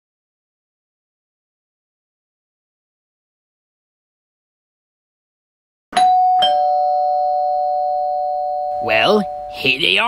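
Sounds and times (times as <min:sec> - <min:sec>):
two-note doorbell chime: 0:06.0 - 0:10.0.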